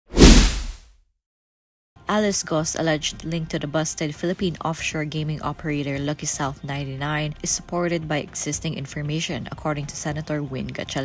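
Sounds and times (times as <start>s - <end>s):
whoosh: 0.1s - 0.8s.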